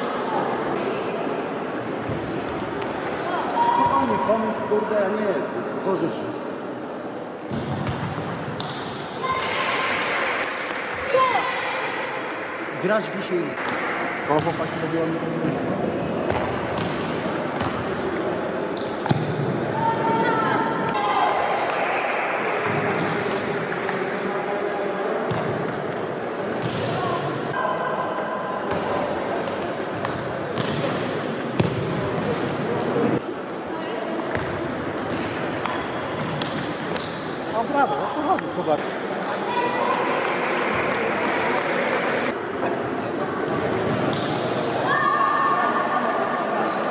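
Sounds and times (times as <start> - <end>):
chatter of voices: 37.3 - 46.9.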